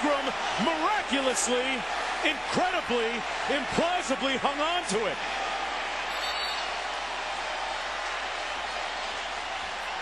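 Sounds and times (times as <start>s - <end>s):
football crowd noise: 0.0s - 10.0s.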